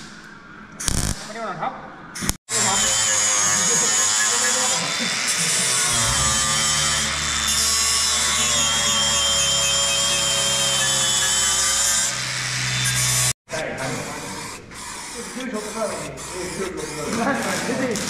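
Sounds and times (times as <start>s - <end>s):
angle grinder grinding steel: 2.5s - 18.0s.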